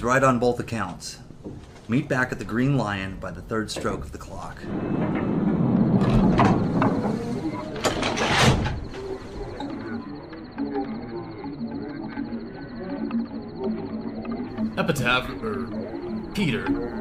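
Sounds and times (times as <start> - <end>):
murmuring voices: 8.9 - 17.0.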